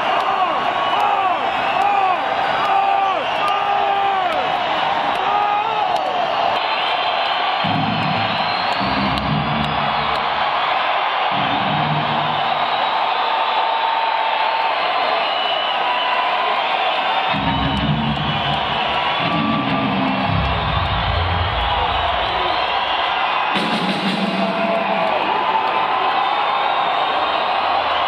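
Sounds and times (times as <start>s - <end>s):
crowd cheering: 0.0s - 28.0s
distorted heavy metal riffs: 11.3s - 12.5s
amplified live band sound: 23.5s - 25.2s.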